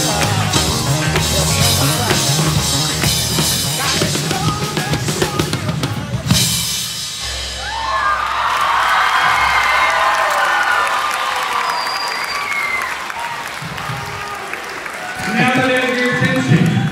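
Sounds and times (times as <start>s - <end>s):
drum solo: 0.0s - 8.7s
crowd cheering and whooping: 7.2s - 16.9s
applause: 8.4s - 16.9s.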